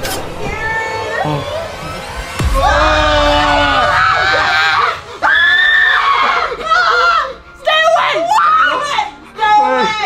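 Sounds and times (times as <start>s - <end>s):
people screaming in fright: 0.8s - 9.1s
deep falling boom: 1.6s - 6.6s.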